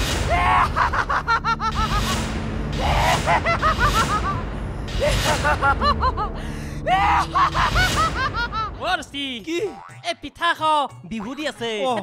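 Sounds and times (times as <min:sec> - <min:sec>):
woman cackling laughter: 0:00.7 - 0:02.1, 0:03.0 - 0:04.4, 0:05.0 - 0:06.3.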